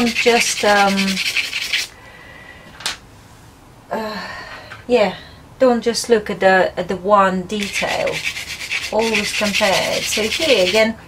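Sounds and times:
pastel stick scratching paper: 0.0 - 1.9, 7.6 - 10.8.

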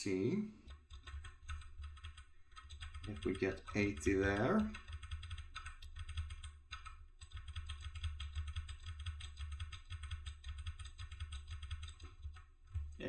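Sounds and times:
computer keyboard typing: 0.6 - 13.0.

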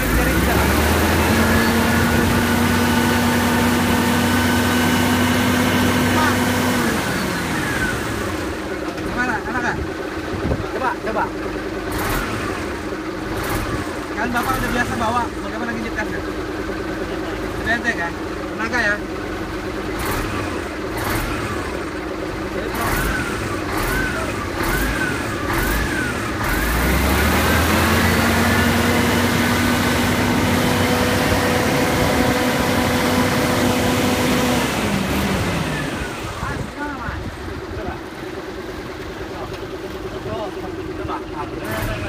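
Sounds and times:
diesel truck engine revving: 0.0 - 42.0.

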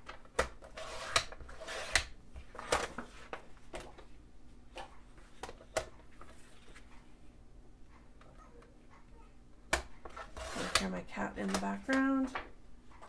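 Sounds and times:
paper trimmer blade cutting: 0.7 - 2.1, 10.2 - 10.9.

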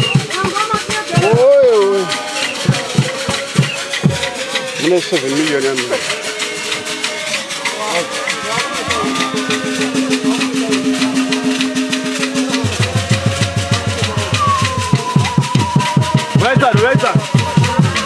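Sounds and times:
drums with fast beat: 0.0 - 18.0
shakers: 0.0 - 18.0
voices singing: 0.0 - 18.0
deep drum strokes: 7.6 - 18.0.

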